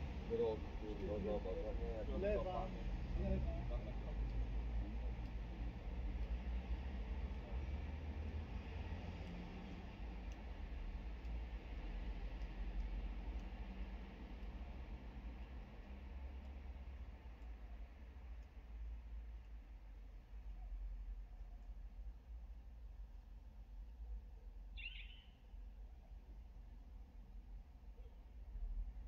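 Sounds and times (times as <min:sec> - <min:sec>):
low rumble inside car cabin: 0:00.0 - 0:24.8
faint light ticks: 0:01.0 - 0:28.9.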